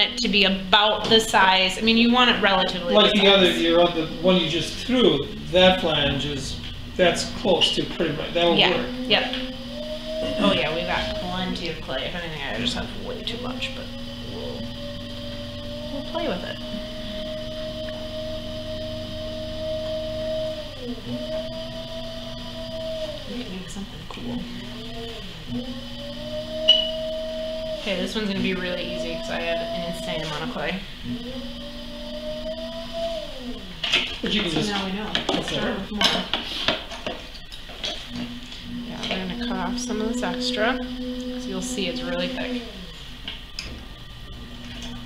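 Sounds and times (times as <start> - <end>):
potter's wheel motor whining: 0.0 - 45.0
steady low hum: 0.0 - 45.0.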